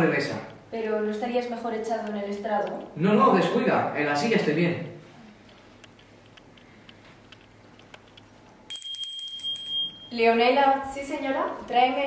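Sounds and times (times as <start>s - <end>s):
bright bell ringing: 8.7s - 10.5s.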